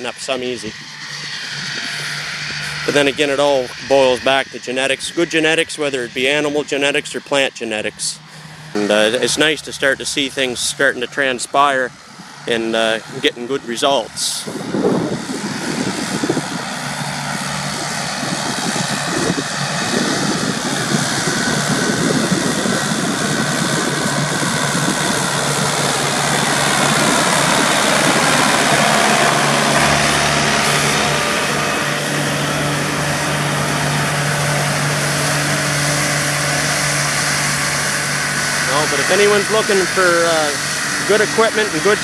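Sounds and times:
disc mower cutting grass: 0.0s - 42.0s
tractor diesel engine under load: 0.0s - 42.0s.

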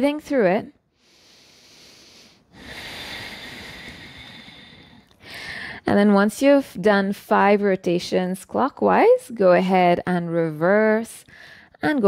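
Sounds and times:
woman speaking: 0.0s - 0.8s, 5.8s - 11.2s, 11.8s - 12.0s
woman breathing: 0.8s - 5.9s, 11.2s - 11.8s.

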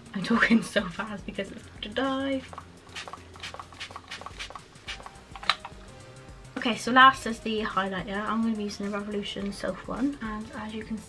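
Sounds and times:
spray bottle hissing: 2.3s - 5.6s.

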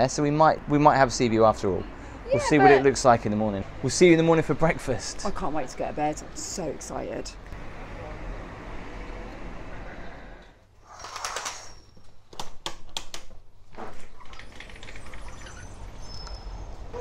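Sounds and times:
faint high chirps: 15.0s - 17.0s.

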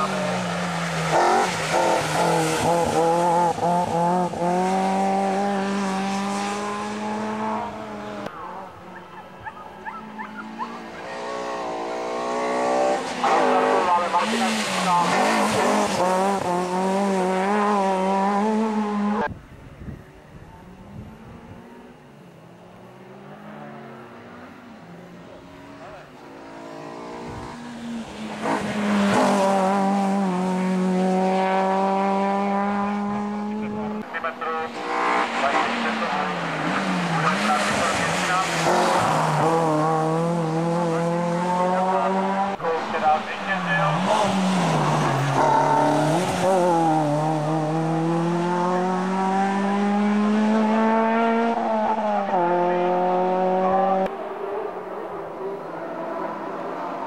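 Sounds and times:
racing car engines at full throttle: 0.0s - 57.0s.

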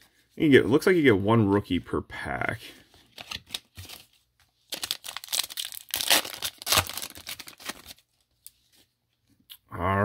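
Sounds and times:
wrapper crinkling and tearing: 3.1s - 8.2s.

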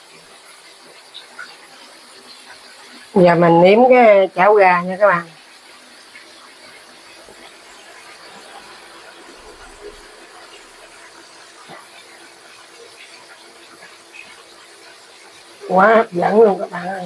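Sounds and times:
sauce bubbling and sizzling: 0.0s - 17.0s.

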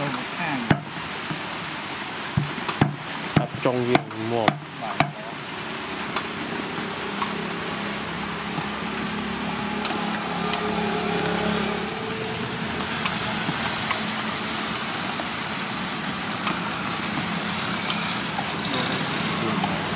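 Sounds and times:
light rain hissing: 0.0s - 19.9s
vehicle engine humming: 2.4s - 19.9s.

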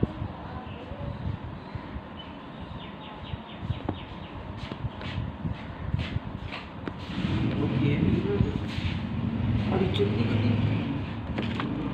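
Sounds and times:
muffled voices: 0.0s - 2.1s.

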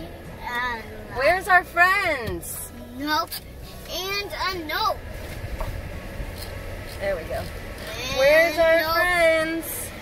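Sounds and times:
low rumble in car cabin: 0.0s - 10.0s.

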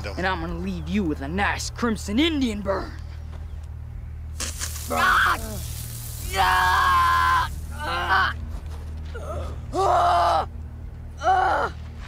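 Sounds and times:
boy screaming in pain: 4.9s - 5.6s, 6.3s - 8.4s.

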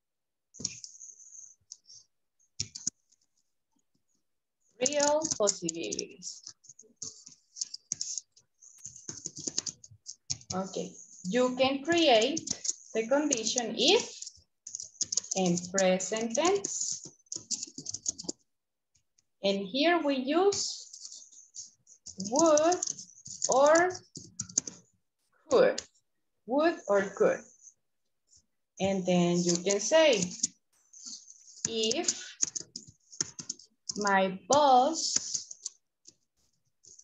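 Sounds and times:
computer mouse clicking: 0.6s - 1.0s, 2.6s - 3.0s, 4.8s - 10.6s, 11.9s - 18.4s, 22.0s - 24.9s, 29.4s - 36.2s.

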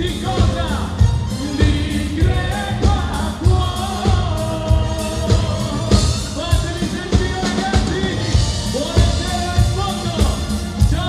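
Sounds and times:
live band playing pop song: 0.0s - 11.0s
man singing long notes: 0.0s - 11.0s.

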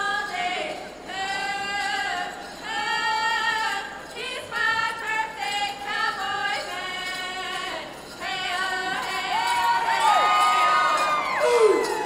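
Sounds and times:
women singing long held notes: 0.0s - 12.0s
crowd whooping and cheering: 9.1s - 12.0s.

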